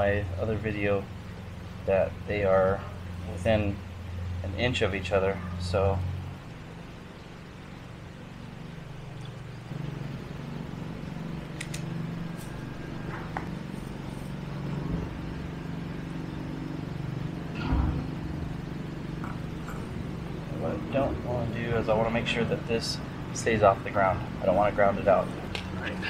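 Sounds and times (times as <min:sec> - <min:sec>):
low machine hum: 0:00.0 - 0:26.0.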